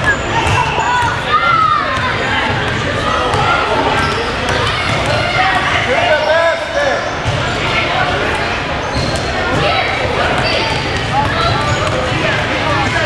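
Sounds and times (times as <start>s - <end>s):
indistinct echoing voices: 0.0s - 13.0s.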